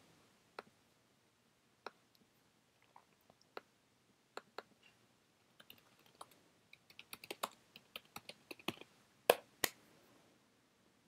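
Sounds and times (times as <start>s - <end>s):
computer keyboard typing: 5.6s - 8.9s.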